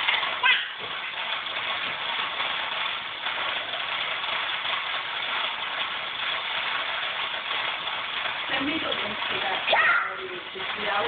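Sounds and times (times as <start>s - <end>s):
toy truck motor running: 0.0s - 11.0s.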